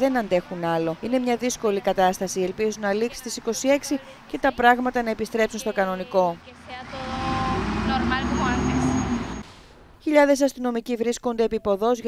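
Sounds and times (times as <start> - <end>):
city bus driving past: 0.0 - 10.0.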